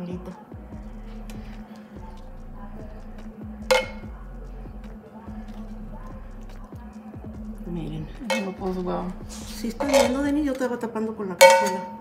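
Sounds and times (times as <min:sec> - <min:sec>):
metal utensil clinking on cookware: 0:03.7 - 0:04.1, 0:08.2 - 0:08.6, 0:09.8 - 0:10.7, 0:11.4 - 0:12.0.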